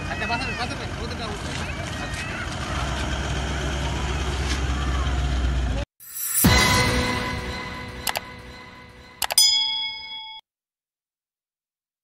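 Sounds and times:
bright notification ding: 0:09.2 - 0:10.4.

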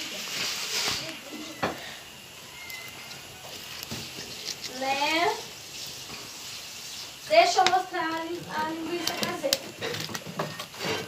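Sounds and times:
fire crackling: 0:00.0 - 0:11.0
wood fire hissing: 0:00.0 - 0:11.0.

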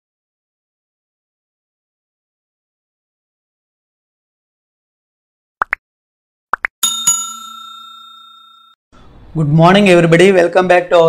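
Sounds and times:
notification bell ding: 0:06.8 - 0:08.8.

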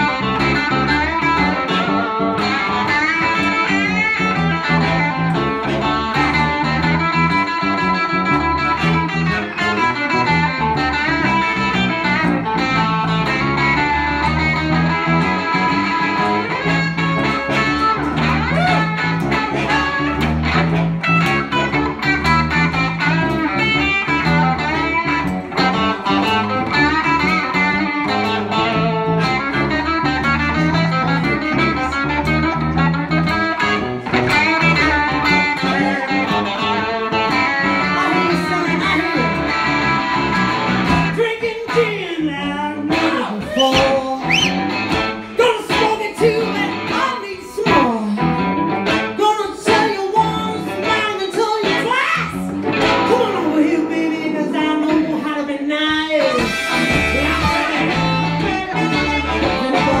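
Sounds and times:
blues band playing: 0:00.0 - 1:00.0
electric guitars: 0:00.0 - 1:00.0
woman singing: 0:41.2 - 0:44.5, 0:45.4 - 0:48.4, 0:49.2 - 0:52.4, 0:53.1 - 0:56.5, 0:57.1 - 1:00.0
harmonica: 0:43.1 - 0:45.4, 0:56.1 - 1:00.0.

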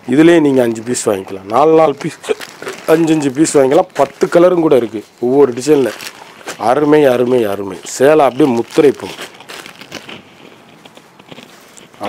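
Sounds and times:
person speaking: 0:00.0 - 0:09.4
cloth rustling: 0:00.2 - 0:12.0.

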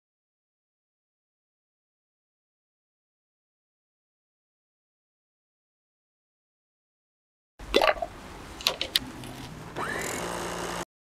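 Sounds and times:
electric food chopper whining: 0:09.8 - 0:10.9.

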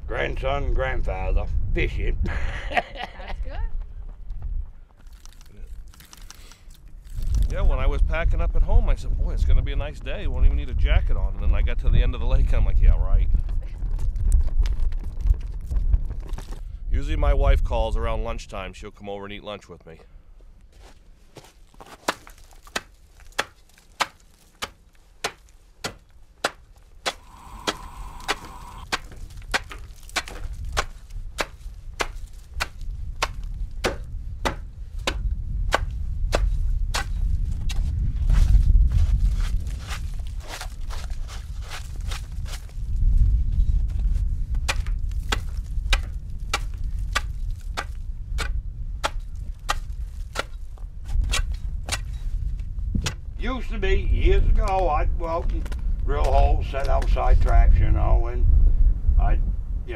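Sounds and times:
wind rumbling on microphone: 0:00.0 - 0:05.9, 0:06.8 - 0:18.7, 0:27.0 - 0:59.9
sharp crunching clicks: 0:05.0 - 0:07.5.

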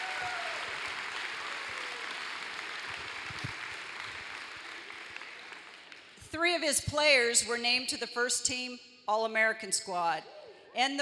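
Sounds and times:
audience applause: 0:00.0 - 0:06.2.

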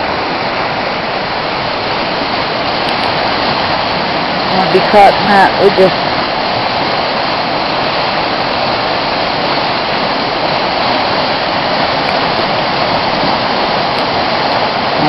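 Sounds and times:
river rushing over rapids: 0:00.0 - 0:15.0.

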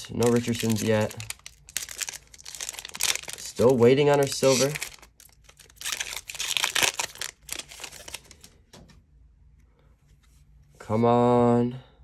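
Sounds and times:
wrapper tearing and crinkling: 0:00.0 - 0:08.5.

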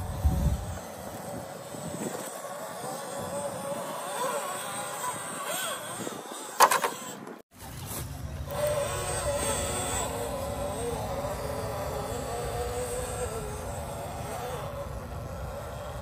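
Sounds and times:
rc car motor whining: 0:00.0 - 0:07.4, 0:08.5 - 0:16.0.

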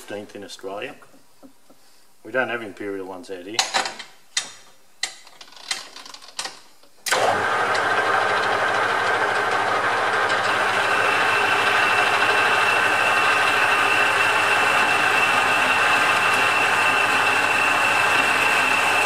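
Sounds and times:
lathe motor running: 0:07.1 - 0:19.0.

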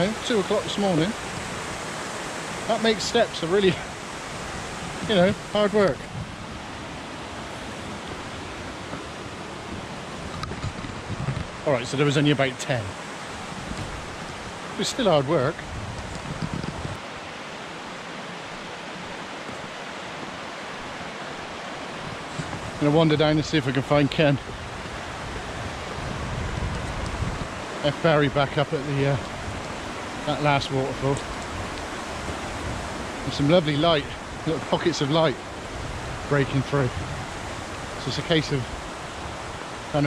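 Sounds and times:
river rushing over falls: 0:00.0 - 0:40.0
wind rumble on microphone: 0:03.8 - 0:11.9, 0:13.2 - 0:14.8, 0:15.4 - 0:17.0, 0:21.9 - 0:23.4, 0:24.0 - 0:34.7, 0:35.3 - 0:40.0.

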